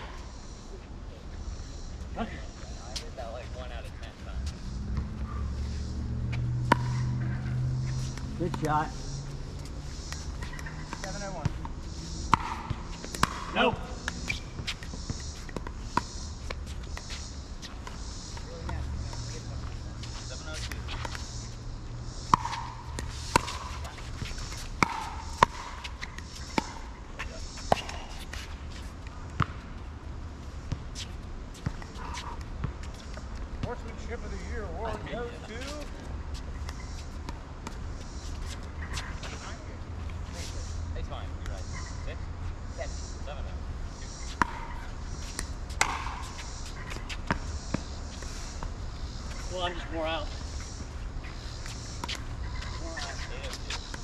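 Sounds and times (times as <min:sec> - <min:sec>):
ball bouncing on hard court: 0:06.1 - 0:09.0, 0:09.6 - 0:21.3, 0:22.2 - 0:29.6, 0:30.7 - 0:34.1, 0:44.2 - 0:48.2.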